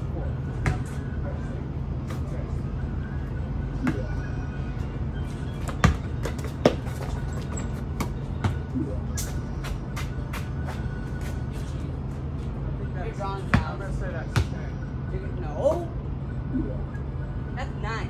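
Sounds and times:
steady low hum: 0:00.0 - 0:18.0
basketball bouncing on pavement: 0:00.6 - 0:01.0, 0:05.6 - 0:08.7, 0:13.4 - 0:14.7.

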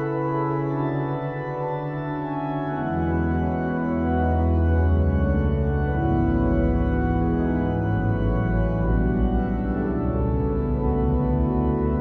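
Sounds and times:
pipe organ playing chords: 0:00.0 - 0:12.0.

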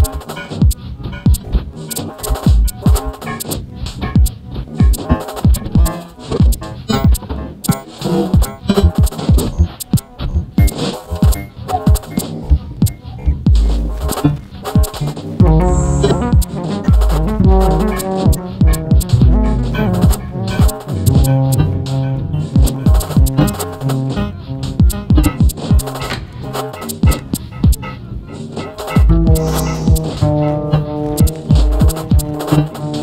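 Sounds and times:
sharp high synth clicks: 0:00.0 - 0:03.6, 0:04.2 - 0:13.0, 0:13.6 - 0:21.7, 0:22.6 - 0:24.2, 0:24.8 - 0:27.9, 0:28.6 - 0:30.3, 0:31.2 - 0:33.0
high electronic ticks: 0:00.0 - 0:27.9, 0:28.5 - 0:33.0
deep falling-pitch synth thumps: 0:12.8 - 0:14.2, 0:15.4 - 0:25.6, 0:29.0 - 0:30.4
upright bass notes: 0:15.4 - 0:25.4, 0:29.0 - 0:31.9.

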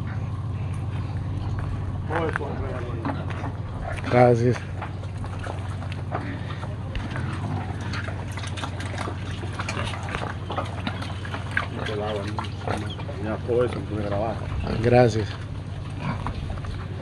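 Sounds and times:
pigs slurping slop: 0:00.0 - 0:17.0.

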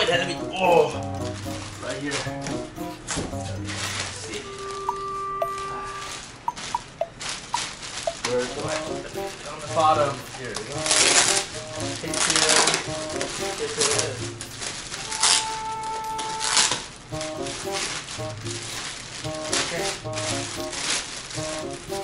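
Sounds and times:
background music: 0:00.0 - 0:07.2, 0:08.5 - 0:15.8, 0:17.1 - 0:22.0
plastic bag crinkling: 0:00.0 - 0:22.0.

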